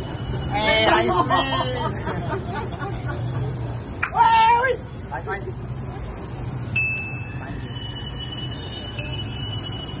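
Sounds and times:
brass bell ringing: 6.8s - 10.0s.

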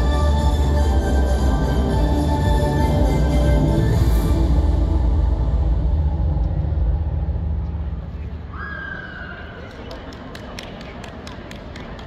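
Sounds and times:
deep bass-heavy music: 0.0s - 8.5s
crowd murmur in indoor hall: 0.0s - 12.0s.

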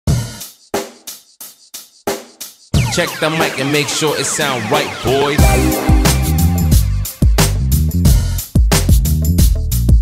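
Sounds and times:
drum hits: 5.4s - 8.8s.

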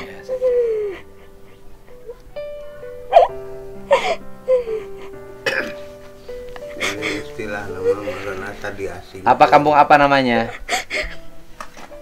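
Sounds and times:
soft sustained background music: 0.0s - 12.0s
girl sobbing gasps: 3.9s - 5.2s, 10.5s - 11.2s.

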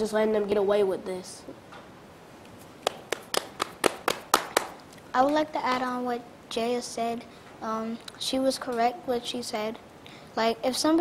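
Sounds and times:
hands clapping: 2.8s - 5.4s.

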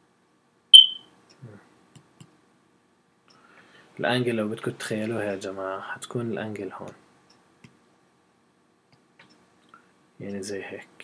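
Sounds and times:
high-pitched electronic beep: 0.8s - 1.0s.

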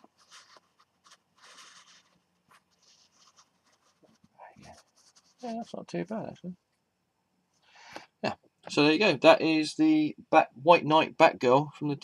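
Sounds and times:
figurine scraping on surface: 0.0s - 5.8s.

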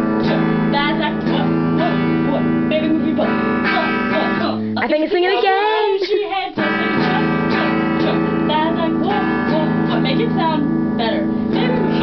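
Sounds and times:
electric guitar strumming chords: 0.0s - 12.0s.

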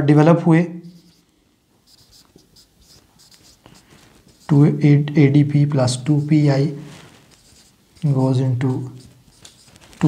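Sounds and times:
marker pen writing on whiteboard: 0.9s - 1.2s, 1.8s - 10.0s.

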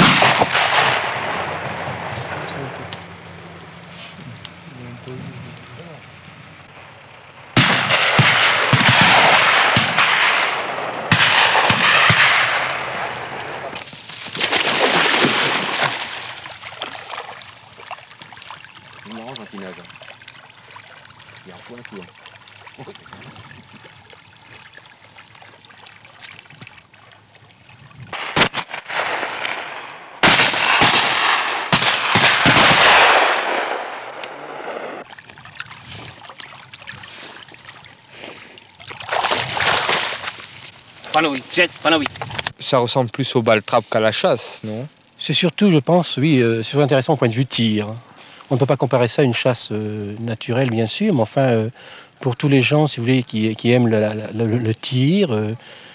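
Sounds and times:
shotgun shots: 0.0s - 2.8s, 7.6s - 13.8s, 28.1s - 35.0s.

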